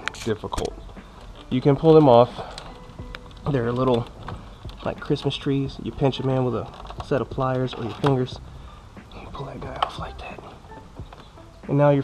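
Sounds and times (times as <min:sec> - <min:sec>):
plastic clip handling and rustling: 0:06.1 - 0:08.2.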